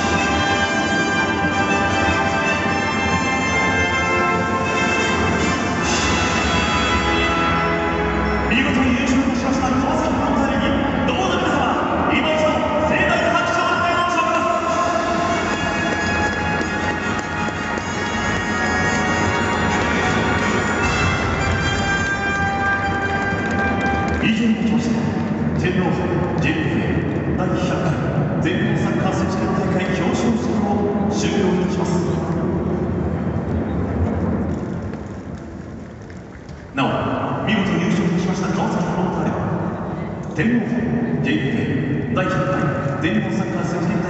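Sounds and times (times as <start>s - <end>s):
background noise: 0.0s - 44.0s
music over public address system: 0.0s - 44.0s
stadium crowd applauding: 14.5s - 25.7s.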